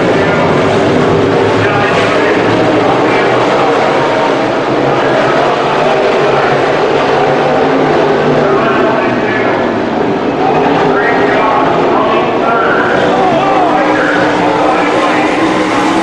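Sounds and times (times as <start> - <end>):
race car engines roaring: 0.0 - 16.0.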